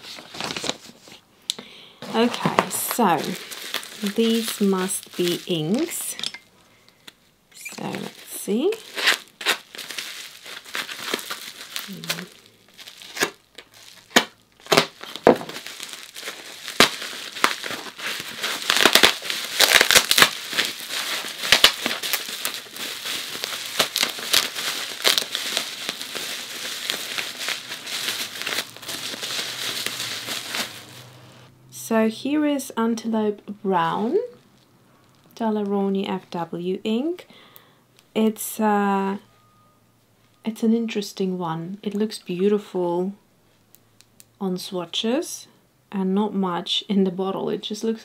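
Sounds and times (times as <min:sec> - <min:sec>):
bubble wrap and paper crinkling: 0:00.0 - 0:01.2, 0:02.0 - 0:06.2, 0:06.9 - 0:31.5
tape being torn: 0:08.8 - 0:12.4, 0:13.0 - 0:31.0.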